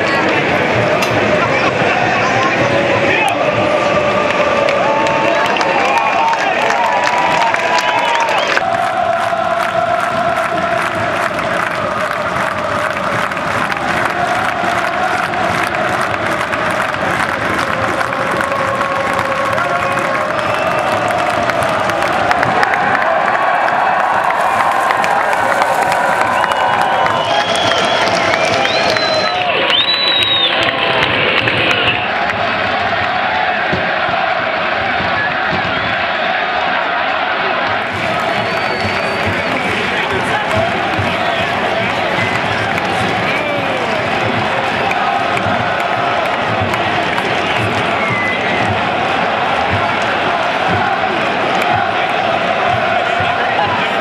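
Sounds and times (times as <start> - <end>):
stadium crowd cheering and singing: 0.0 - 54.0.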